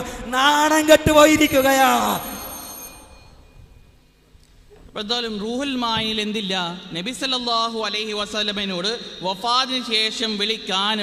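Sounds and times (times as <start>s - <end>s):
man's amplified voice with echo: 0.0s - 2.6s, 4.8s - 11.0s
faint high-pitched ringing tones: 0.0s - 8.0s.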